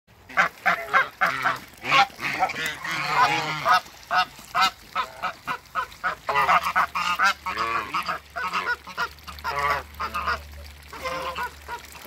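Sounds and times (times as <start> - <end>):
geese honking: 0.3 - 12.0.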